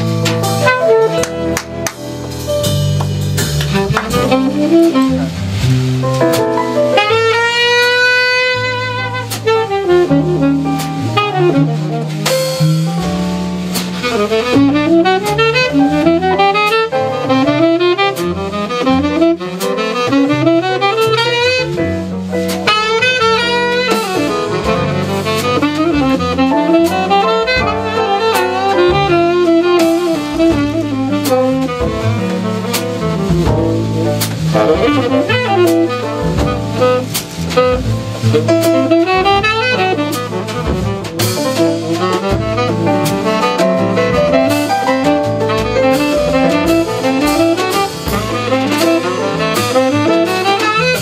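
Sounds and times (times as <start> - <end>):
drums with cymbal strikes: 0.0 - 51.0
piano: 0.0 - 51.0
walking double bass: 0.0 - 51.0
tenor saxophone solo: 0.2 - 2.0, 3.4 - 51.0.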